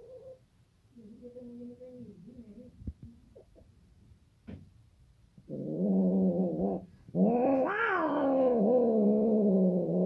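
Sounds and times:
cat yowling: 7.3s - 8.6s.

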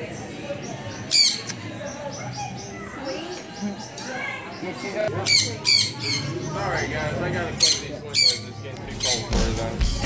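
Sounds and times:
birds chirping: 0.0s - 10.0s
murmur of people talking: 0.0s - 10.0s
parrot squawk: 5.2s - 6.5s, 7.6s - 9.3s.

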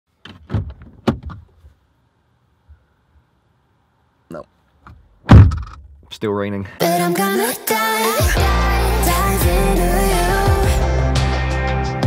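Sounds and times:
sharp clunks and knocks: 4.8s - 6.0s.

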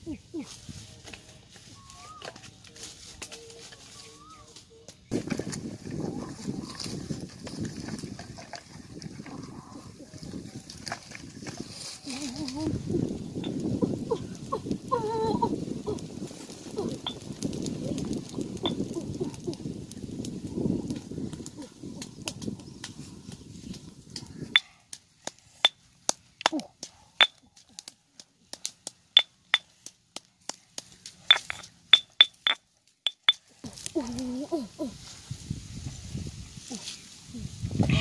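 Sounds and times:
dry leaves and sticks rustling: 0.0s - 38.0s
fire crackling and popping: 5.1s - 34.3s.

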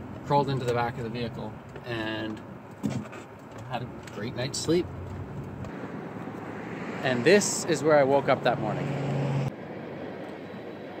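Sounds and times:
road noise hiss: 0.0s - 11.0s.

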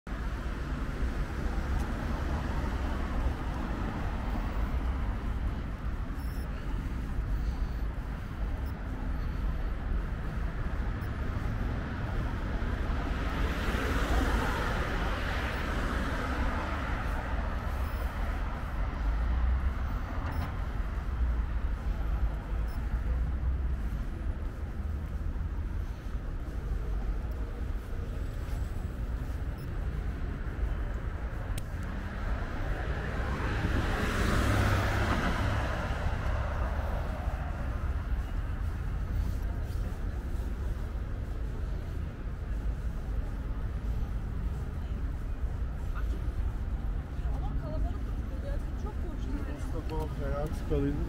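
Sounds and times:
low traffic rumble: 0.1s - 51.0s
car passing by: 10.8s - 25.0s, 30.6s - 45.3s.

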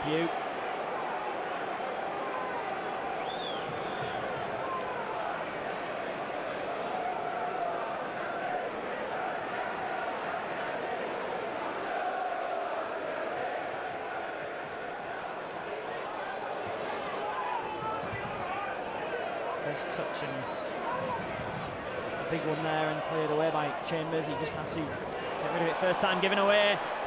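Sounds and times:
crowd voices: 0.0s - 27.0s.

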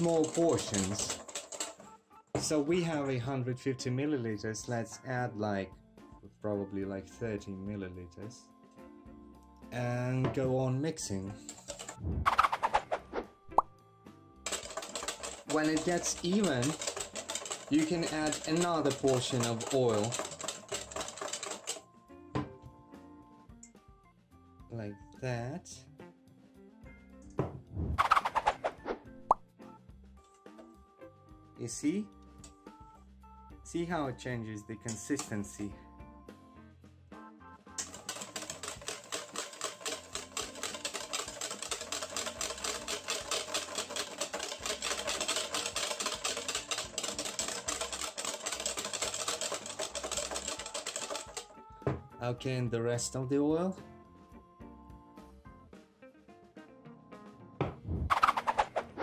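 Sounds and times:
whisk beating in metal bowl: 0.0s - 2.6s, 14.5s - 21.8s, 37.8s - 51.4s.

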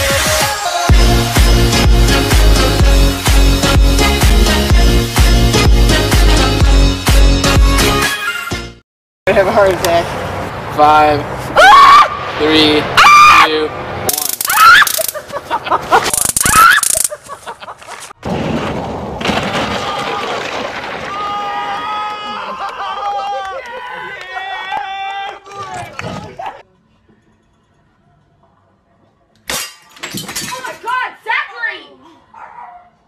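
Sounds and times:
noisy outdoor background: 9.2s - 33.0s
person yelping and shrieking: 11.6s - 12.2s, 14.4s - 15.1s, 16.4s - 17.1s
high-pitched yelling and cries: 16.4s - 17.2s
crash of something breaking: 18.2s - 21.8s.

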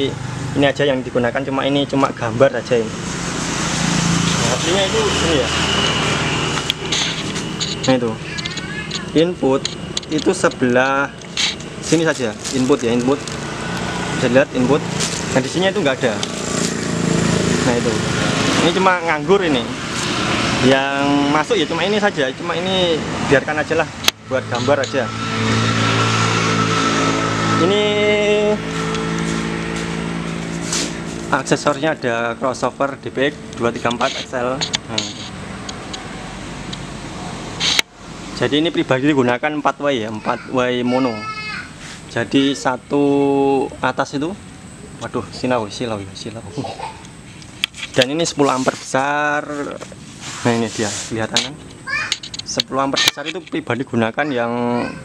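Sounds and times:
thin steady whine: 0.0s - 40.8s
low motor hum: 2.3s - 38.8s.

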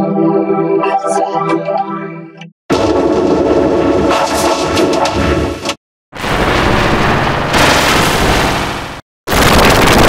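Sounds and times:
loud dense crackling noise: 2.7s - 10.0s.

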